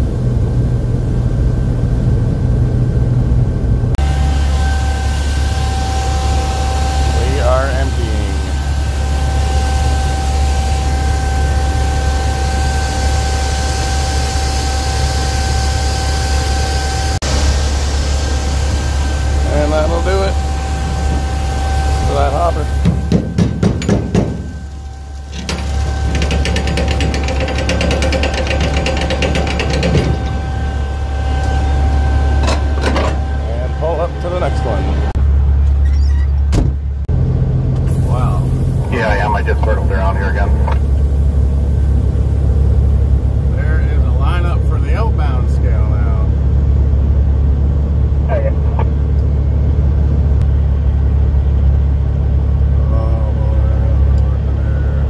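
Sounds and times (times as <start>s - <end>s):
thin steady whine: 0.0s - 36.0s, 37.2s - 55.0s
low machinery hum: 0.0s - 55.0s
grain pouring into a pit: 24.7s - 27.4s.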